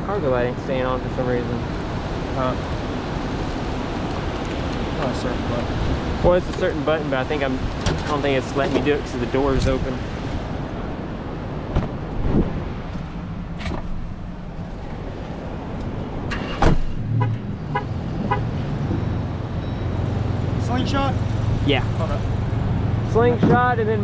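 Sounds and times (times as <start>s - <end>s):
car engine idling: 12.9s - 18.4s
electronic beeps: 18.8s - 20.1s.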